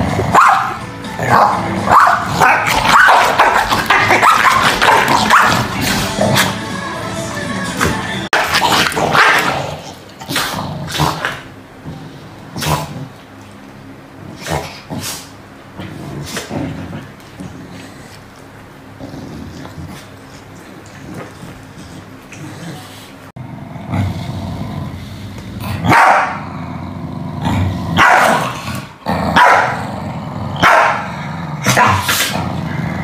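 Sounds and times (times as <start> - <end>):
background music: 0.0 - 3.0, 5.1 - 8.6
dogs barking: 0.2 - 6.6, 8.3 - 9.7, 25.8 - 26.4, 28.0 - 28.5, 29.3 - 29.8, 30.6 - 32.2.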